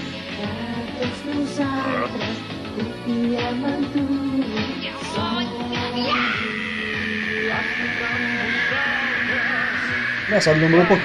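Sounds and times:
dramatic background music: 0:00.0 - 0:11.0
long high-pitched scream: 0:06.0 - 0:11.0.

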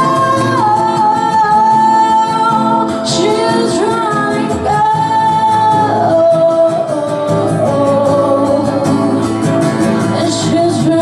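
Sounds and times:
acoustic guitar chords: 0:00.0 - 0:11.0
woman singing: 0:00.0 - 0:11.0.

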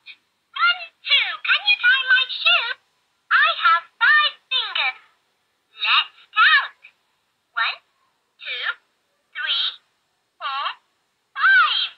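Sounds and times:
toy voice through small speaker: 0:00.0 - 0:07.0, 0:07.6 - 0:11.9.

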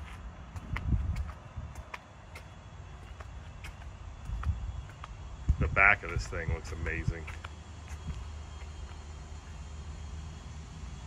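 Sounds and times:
footsteps on pavement: 0:00.0 - 0:10.2
low steady rumble: 0:00.0 - 0:11.0.

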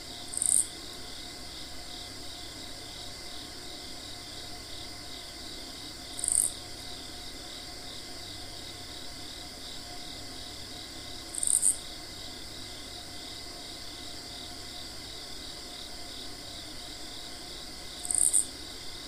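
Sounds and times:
crickets trilling: 0:00.0 - 0:19.0
shrill high insect call: 0:00.0 - 0:19.0.

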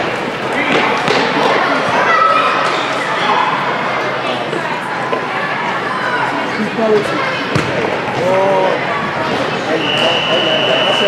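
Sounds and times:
children shouting: 0:01.5 - 0:04.4.

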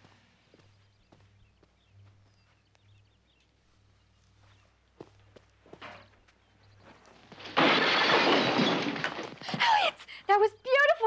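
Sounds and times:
soft footsteps: 0:00.0 - 0:07.4
window glass breaking: 0:07.4 - 0:09.5.

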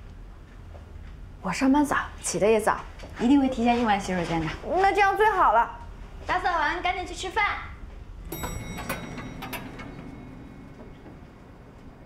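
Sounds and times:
low hum: 0:08.0 - 0:12.0
elevator chime ding: 0:08.2 - 0:12.0.

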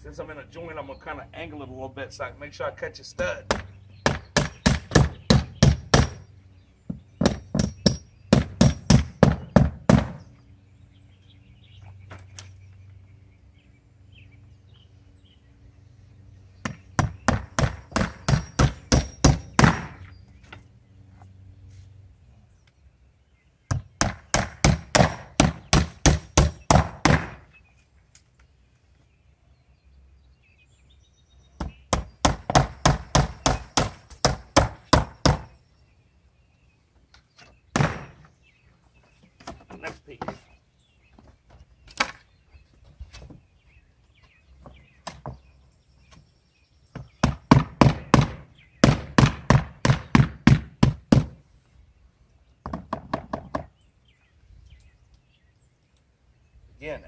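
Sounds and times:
hammer driving nails into wood: 0:23.7 - 0:27.4, 0:31.6 - 0:35.5, 0:37.7 - 0:38.3.

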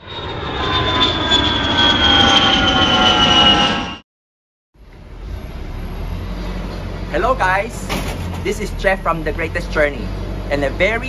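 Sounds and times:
jet engine whine: 0:00.0 - 0:04.0, 0:04.9 - 0:11.0
noisy rumble: 0:04.8 - 0:11.0.

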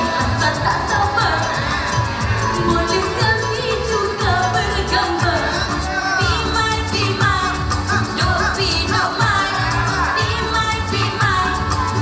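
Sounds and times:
amplified music with heavy bass: 0:00.0 - 0:12.0.

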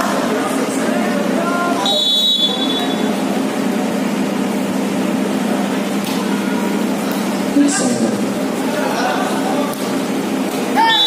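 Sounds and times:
court and spectator noise: 0:00.0 - 0:11.0
referee's whistle blast: 0:01.8 - 0:03.1.

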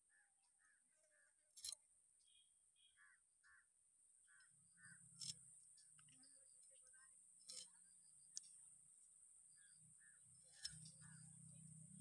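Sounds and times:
faint bird calls: 0:00.0 - 0:01.5, 0:02.2 - 0:08.6, 0:09.5 - 0:12.0.

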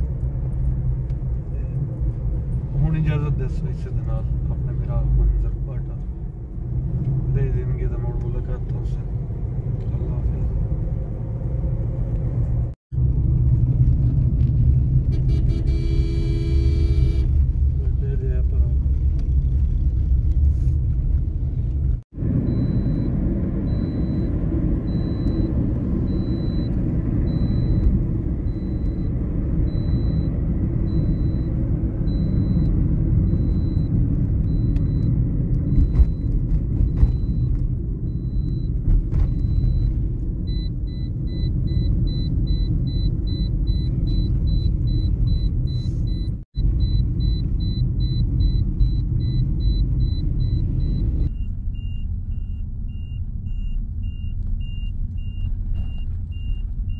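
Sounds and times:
vehicle engine and road rumble: 0:00.0 - 0:56.9.

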